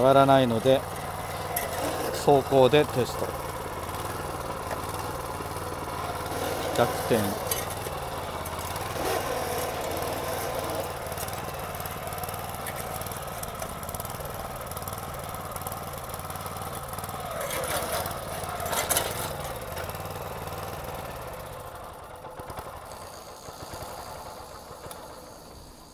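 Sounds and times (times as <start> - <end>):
tiller engine running: 0.0 - 25.9.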